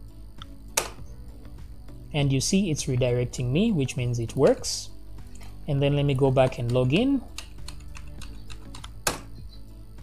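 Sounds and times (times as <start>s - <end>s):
computer keyboard typing: 6.6s - 9.0s.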